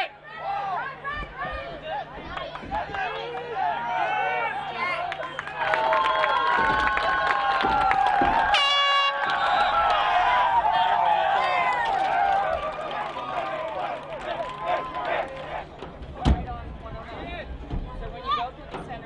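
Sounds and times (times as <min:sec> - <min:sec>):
voices shouting outdoors: 0:00.0 - 0:16.4.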